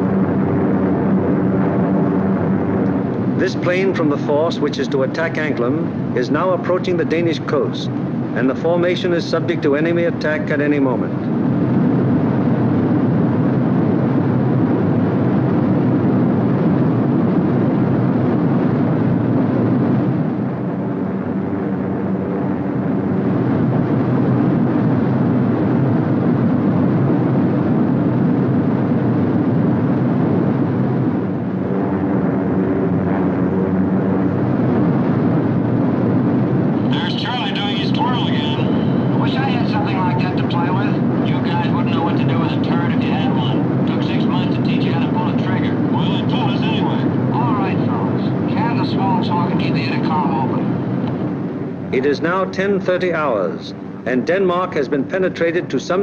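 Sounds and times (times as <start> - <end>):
aircraft engines droning: 0.0 - 56.0.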